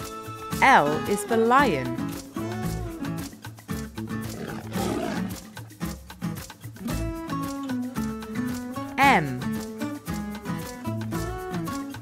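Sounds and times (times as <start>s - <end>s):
background music with beat: 0.0s - 12.0s
lion roar: 4.2s - 5.5s.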